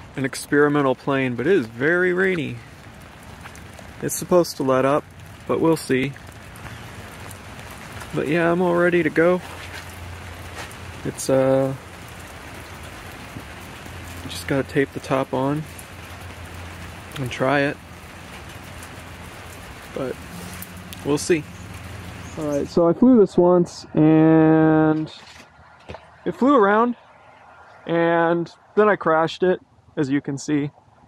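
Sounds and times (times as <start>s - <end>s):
steady rain hiss: 0.0s - 23.0s.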